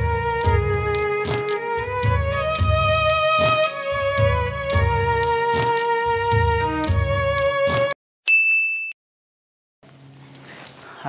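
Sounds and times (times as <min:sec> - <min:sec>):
background music with held notes: 0:00.0 - 0:08.0
bright chime ding: 0:08.3 - 0:09.0.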